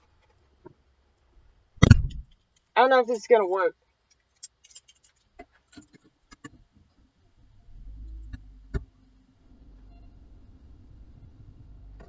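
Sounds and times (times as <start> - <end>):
car keys clinking: 4.3 - 5.2.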